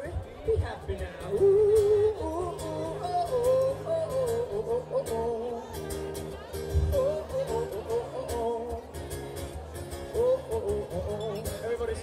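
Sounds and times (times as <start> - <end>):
strummed acoustic guitar: 0.0 - 12.0
man vocalising held notes: 0.4 - 5.9.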